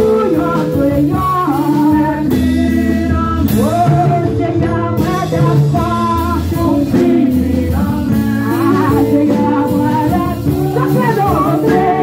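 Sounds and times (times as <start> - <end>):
woman singing gospel song: 0.0 - 12.0.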